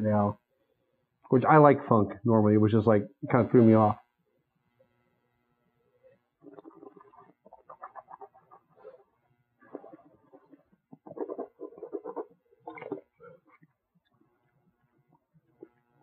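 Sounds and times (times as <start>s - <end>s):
spitting into metal cup: 6.4s - 9.0s, 9.6s - 13.7s.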